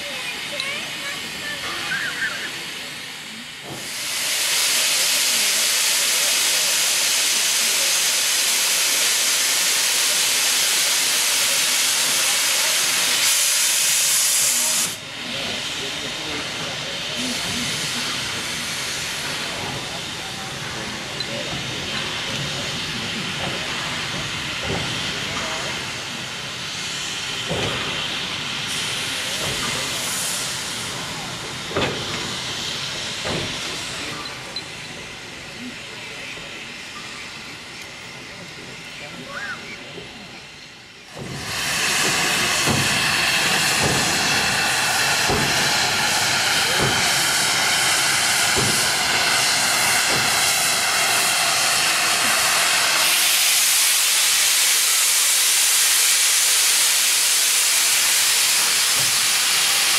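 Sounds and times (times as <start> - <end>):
steam locomotive hissing: 0.0 - 59.9.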